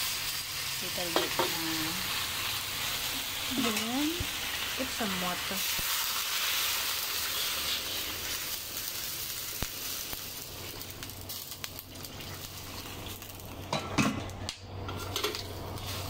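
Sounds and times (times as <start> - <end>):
water sizzling in hot wok: 0.0 - 16.0.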